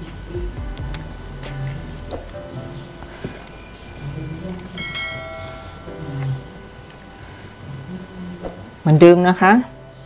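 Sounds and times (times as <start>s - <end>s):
sharp click: 3.3s - 3.6s
bright bell chime: 3.5s - 6.8s.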